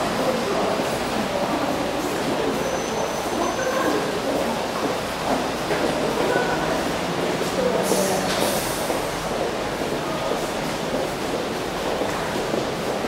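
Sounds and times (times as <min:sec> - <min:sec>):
indistinct voices of passers-by: 0:00.0 - 0:13.0.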